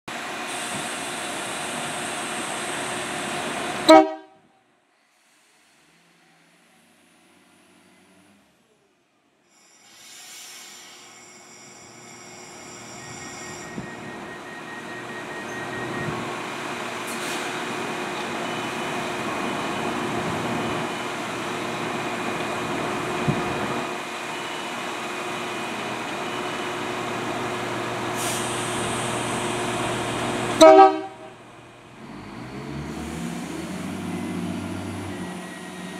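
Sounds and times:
diesel train engine droning: 0.1 - 35.9
train horn blast: 3.8 - 4.4, 30.6 - 31.4
brief hiss: 9.6 - 11.7.

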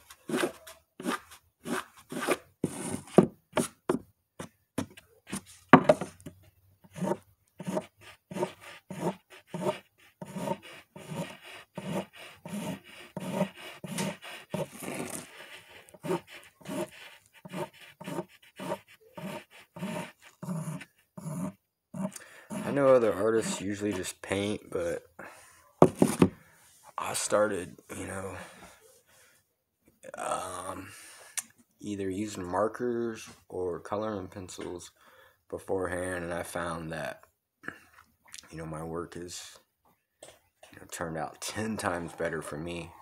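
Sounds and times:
pencil scratching sketch strokes: 0.0 - 3.7, 6.8 - 24.1.

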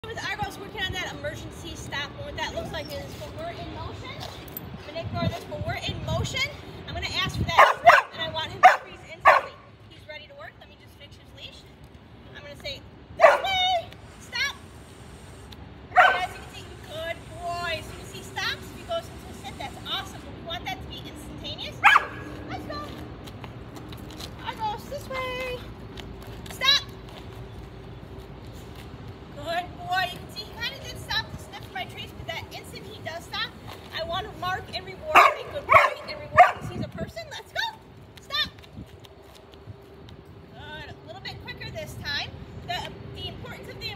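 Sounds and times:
dog barking: 7.6 - 9.6, 13.2 - 13.6, 15.9 - 16.4, 21.8 - 22.3, 35.1 - 36.6.

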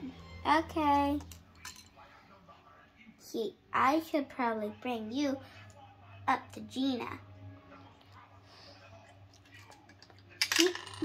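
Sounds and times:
plastic pieces clicking and rattling: 10.0 - 11.0.

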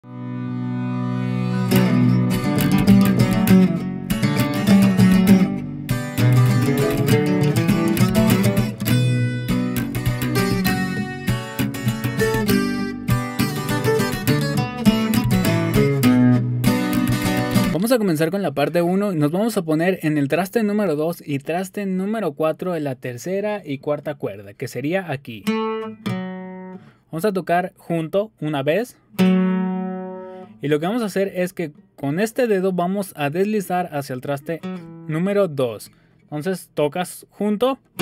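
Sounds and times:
acoustic guitar lead line: 0.0 - 19.6, 25.1 - 27.1, 29.0 - 32.3, 33.0 - 36.4, 37.7 - 38.0.

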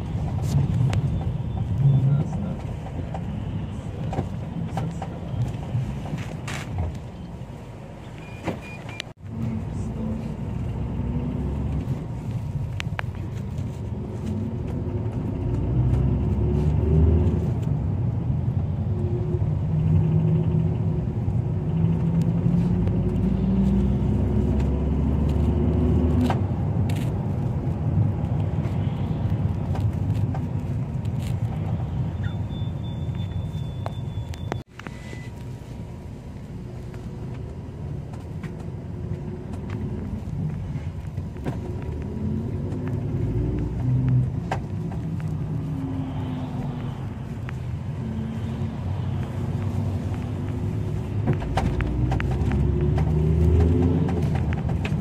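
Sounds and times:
minibus engine hum: 0.0 - 55.0
road noise: 0.0 - 55.0.

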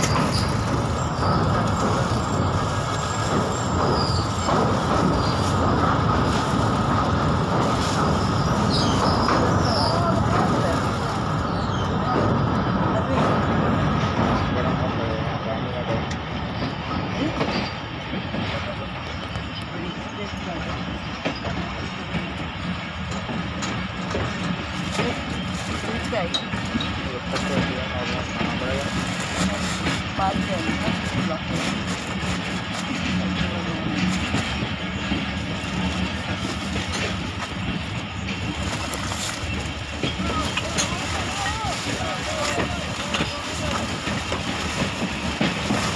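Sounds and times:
people's voices: 0.0 - 45.9
train wheels rumbling on track: 0.0 - 45.9.

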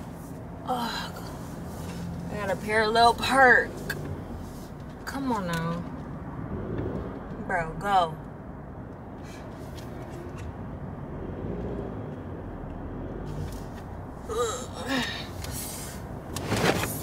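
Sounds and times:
car engine and cabin rumble: 0.0 - 17.0.

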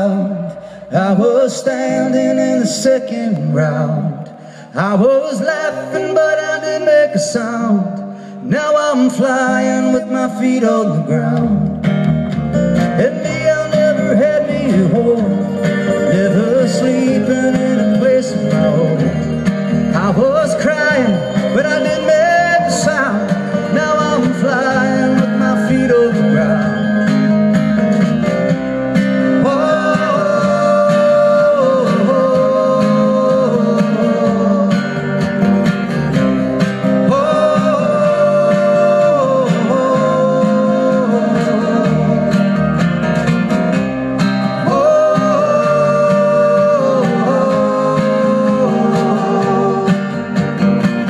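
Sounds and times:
strummed acoustic guitars: 0.0 - 51.0
held melody lines: 9.2 - 51.0
upright bass: 9.3 - 51.0
drums: 11.0 - 51.0.

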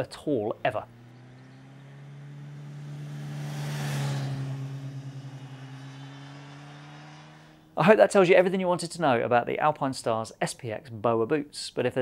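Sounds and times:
motorcycle riding past: 0.4 - 7.8.

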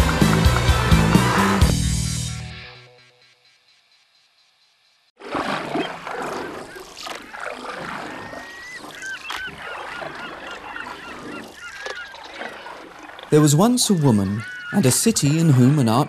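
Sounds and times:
wind and water noise: 5.2 - 16.0
gulls calling: 5.3 - 16.0.

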